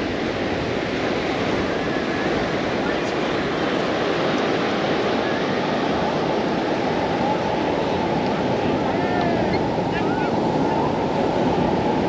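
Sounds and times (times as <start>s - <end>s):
ocean surf: 0.0s - 12.0s
wind: 0.0s - 12.0s.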